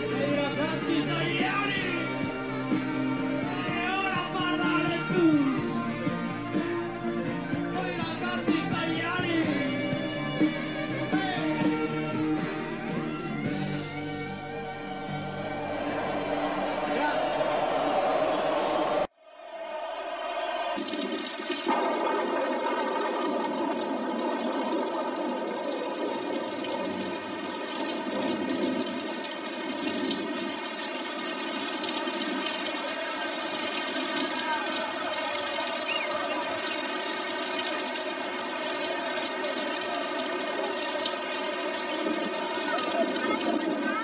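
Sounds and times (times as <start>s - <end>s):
rain falling: 0.0s - 19.1s, 19.7s - 44.0s.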